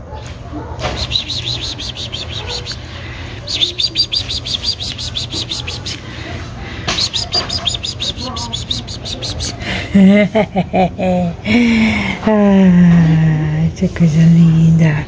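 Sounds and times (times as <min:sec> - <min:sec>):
bird chirping in fast runs: 0:01.0 - 0:02.8, 0:03.5 - 0:06.0, 0:06.9 - 0:09.5.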